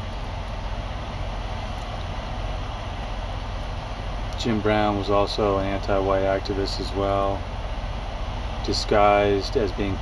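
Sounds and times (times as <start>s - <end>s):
air conditioning fan hiss: 0.0s - 10.0s
truck engine idling: 0.0s - 10.0s.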